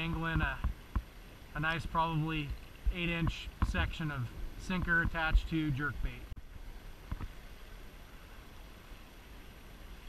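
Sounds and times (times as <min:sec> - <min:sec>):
river flowing: 0:00.0 - 0:10.0.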